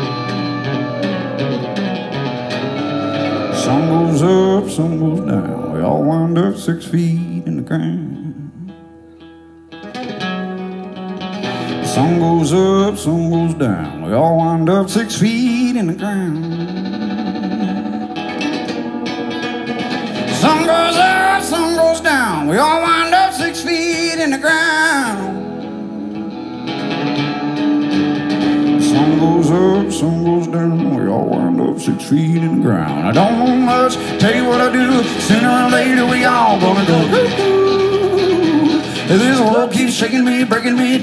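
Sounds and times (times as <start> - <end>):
acoustic guitar country song: 0.0 - 41.0.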